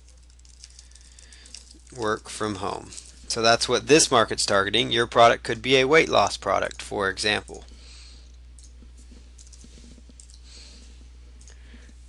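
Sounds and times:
low electrical hum and hiss: 0:00.0 - 0:12.0.

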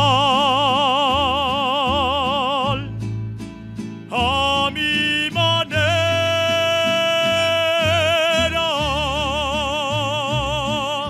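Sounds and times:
mariachi band playing: 0:00.0 - 0:11.0.

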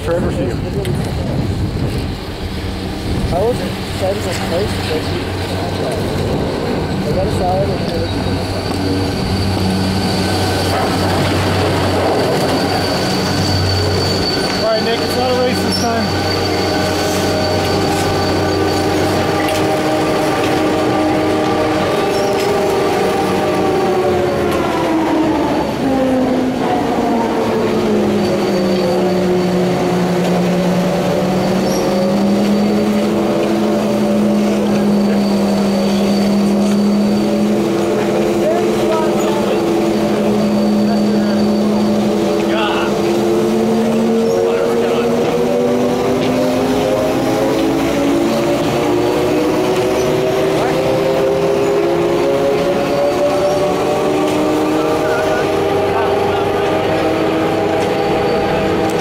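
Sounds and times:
machinery whining hum: 0:00.0 - 0:59.0.

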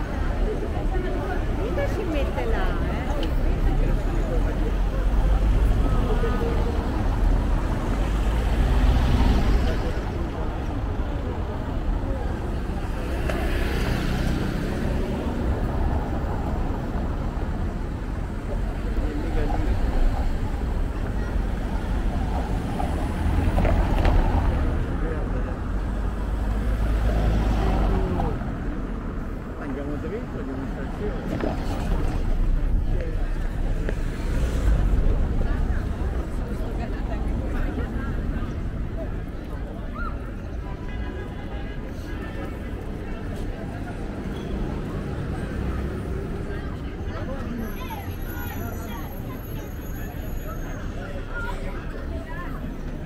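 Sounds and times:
cars driving over cobblestones: 0:00.0 - 0:53.0
low traffic rumble: 0:00.0 - 0:53.0
people's voices: 0:00.0 - 0:53.0.

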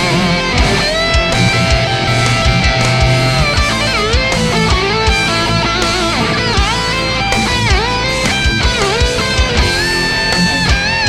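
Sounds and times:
distorted electric guitar lead: 0:00.0 - 0:11.0
drum backing: 0:00.0 - 0:11.0.

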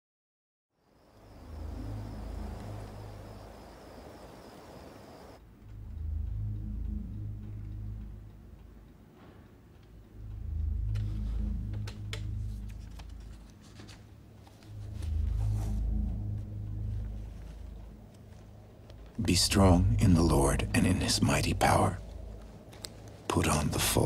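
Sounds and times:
faint high whine: 0:00.8 - 0:05.4
low rumbling film score drone: 0:01.0 - 0:13.6, 0:14.2 - 0:24.0.

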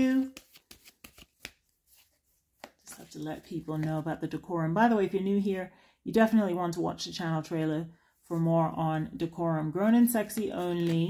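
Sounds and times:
cards tapping: 0:00.2 - 0:04.0.

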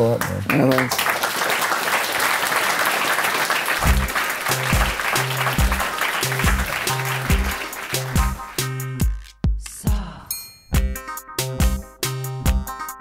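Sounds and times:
audience applauding: 0:00.1 - 0:09.0
music with repeating bass line: 0:03.8 - 0:13.0.

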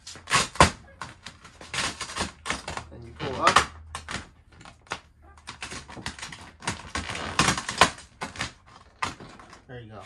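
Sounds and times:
vinyl film crackling and crinkling: 0:00.0 - 0:10.0.

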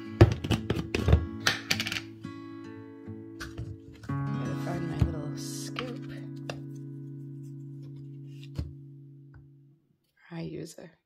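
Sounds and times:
acoustic guitar music: 0:00.0 - 0:09.8.

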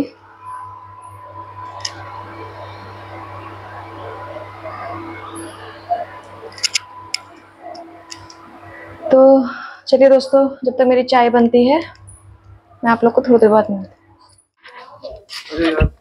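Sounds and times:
induction cooktop humming: 0:00.0 - 0:16.0.

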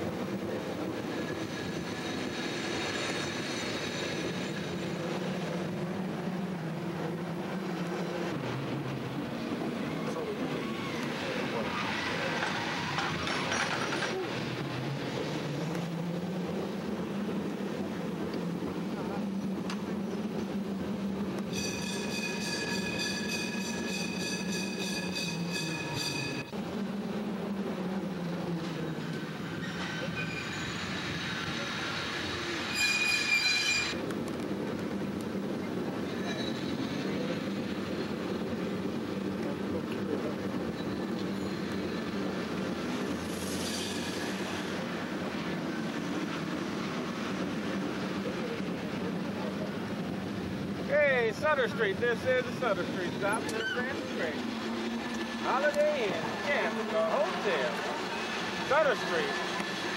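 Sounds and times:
cable car rumbling on track: 0:00.0 - 0:59.9
metal-on-metal squeals: 0:29.4 - 0:31.5, 0:32.6 - 0:34.0, 0:36.2 - 0:37.1, 0:43.4 - 0:44.4, 0:53.4 - 0:54.1.

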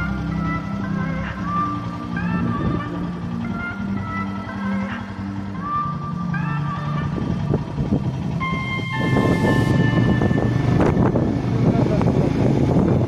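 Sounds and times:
background music: 0:00.0 - 0:11.6
motorcycle engine rumble: 0:00.0 - 0:13.0
wind noise on microphone: 0:02.2 - 0:03.3, 0:07.0 - 0:13.0.

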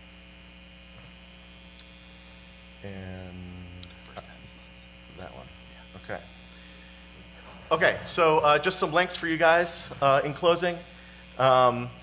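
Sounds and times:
electrical mains hum: 0:00.0 - 0:12.0
man's voice: 0:07.7 - 0:12.0.

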